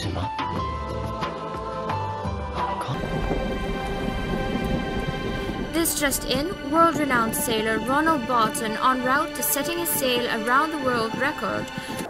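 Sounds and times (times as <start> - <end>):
steady held music tones: 2.9 - 12.0
rushing wind and water: 3.0 - 12.0.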